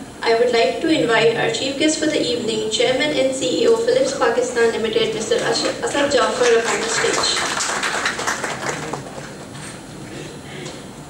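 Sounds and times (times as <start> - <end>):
audience applause: 5.4 - 9.6.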